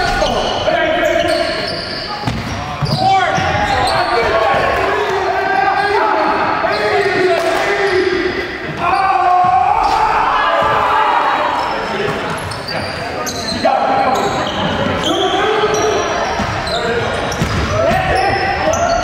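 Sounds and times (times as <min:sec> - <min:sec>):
players calling out: 0:00.0 - 0:19.0.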